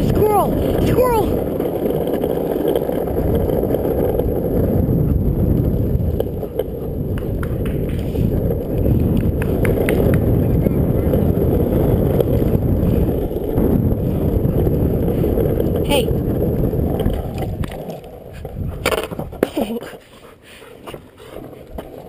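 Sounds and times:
longboard wheels rolling on asphalt: 0:00.0 - 0:22.0.

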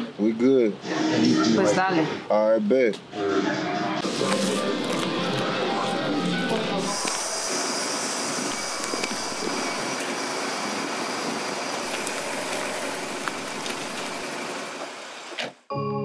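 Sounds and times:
street traffic noise: 0:03.8 - 0:15.4.

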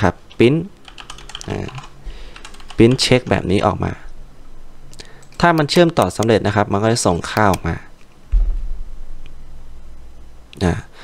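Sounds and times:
computer keyboard typing: 0:00.3 - 0:03.4.

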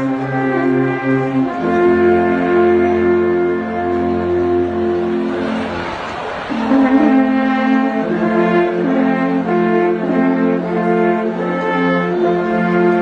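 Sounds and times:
brass band playing chords: 0:00.0 - 0:13.0.

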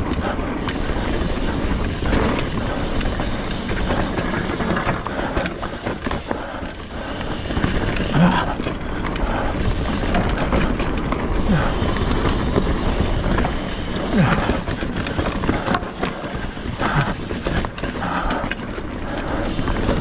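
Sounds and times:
bike knocks and rattles: 0:00.0 - 0:20.0.

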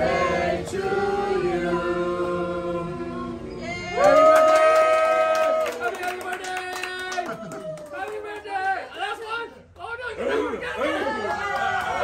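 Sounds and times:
overlapping chatter: 0:06.0 - 0:12.0.

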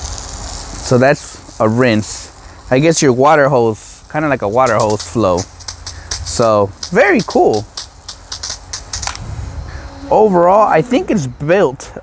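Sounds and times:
water spray spattering on concrete: 0:00.0 - 0:09.3
faint steady hum: 0:00.0 - 0:12.0.

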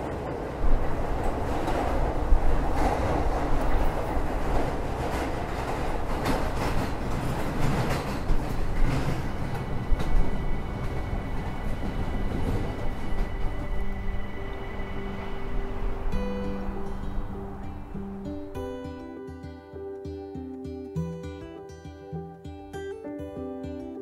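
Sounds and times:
train wheels clattering: 0:00.0 - 0:18.2
freight train rumbling: 0:00.0 - 0:19.0.

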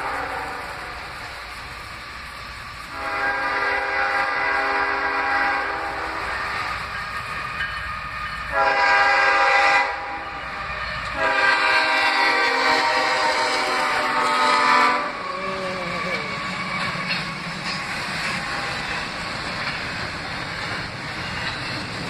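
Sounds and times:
locomotive air horn blasts: 0:00.0 - 0:00.9, 0:02.9 - 0:06.6, 0:08.5 - 0:10.3, 0:11.1 - 0:16.6
train rumble: 0:00.0 - 0:22.0.

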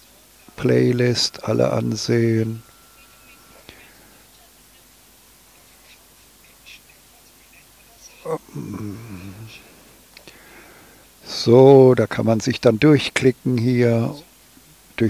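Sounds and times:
faint speech through speakers: 0:00.0 - 0:10.4.

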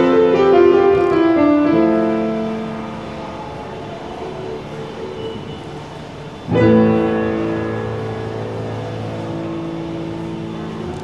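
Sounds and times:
piano chord ringing: 0:00.0 - 0:05.6, 0:06.4 - 0:11.0.

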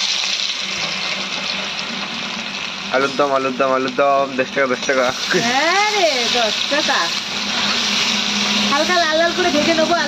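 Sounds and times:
potatoes frying in oil: 0:00.0 - 0:10.0.

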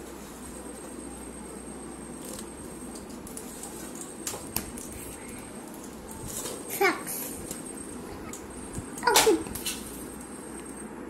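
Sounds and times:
animal whining: 0:07.8 - 0:09.2.

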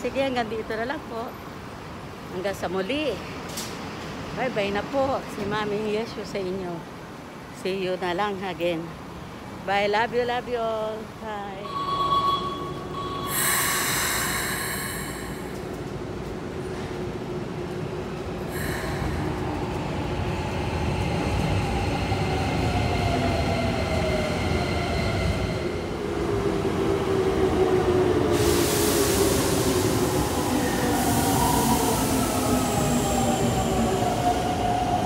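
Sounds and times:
electric train rumble and whine: 0:00.0 - 0:35.0.

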